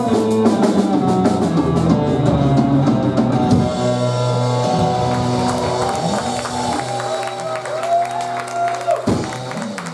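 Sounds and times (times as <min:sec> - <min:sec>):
rock band holding closing chord: 0:00.0 - 0:09.9.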